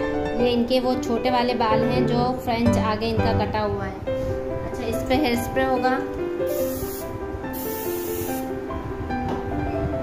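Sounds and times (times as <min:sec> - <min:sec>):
background music: 0:00.0 - 0:10.0
aerosol hairspray hissing: 0:06.5 - 0:08.5.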